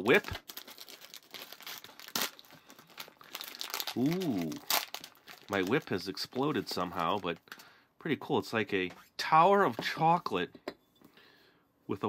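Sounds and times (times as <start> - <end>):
candy wrapper crinkling: 0.0 - 7.6.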